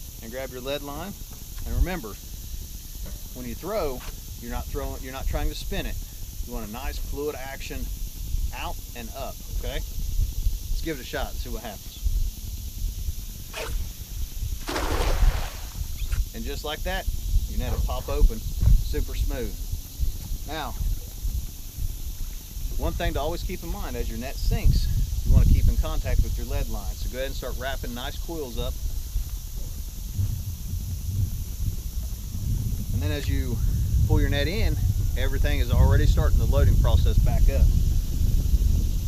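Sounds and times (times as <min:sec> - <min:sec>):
faint steady hiss: 0:00.0 - 0:39.0
wind rumble on microphone: 0:00.0 - 0:39.0
cast net whooshing: 0:13.5 - 0:14.0, 0:14.6 - 0:16.0
net splashing on water: 0:14.6 - 0:16.0.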